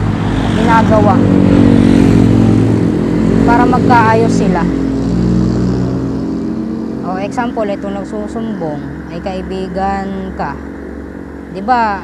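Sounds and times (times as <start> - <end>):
car passing: 0.0 - 12.0
motorcycle approaching: 0.0 - 12.0.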